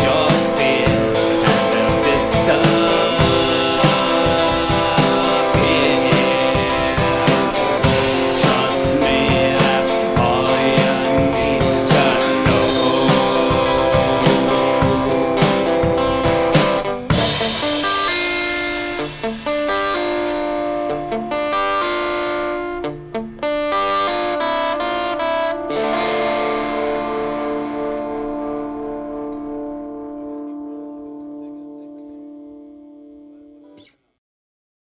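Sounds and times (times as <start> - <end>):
distorted electric guitar chords: 0.0 - 33.9.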